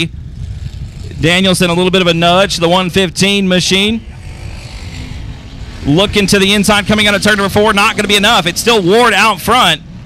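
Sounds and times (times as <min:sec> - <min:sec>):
race car engines rumbling: 0:00.0 - 0:10.0.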